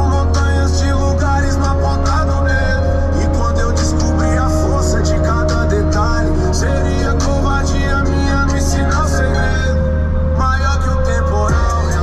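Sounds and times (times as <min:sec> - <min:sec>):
hip hop track playing: 0:00.0 - 0:12.0.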